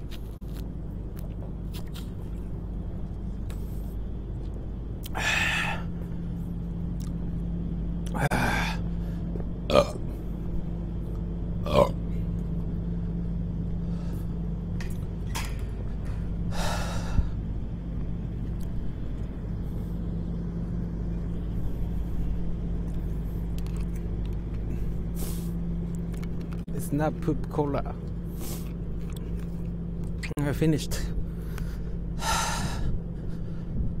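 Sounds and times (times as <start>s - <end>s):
steady low hum: 0.0s - 34.0s
man burping: 9.6s - 10.2s, 11.6s - 12.2s.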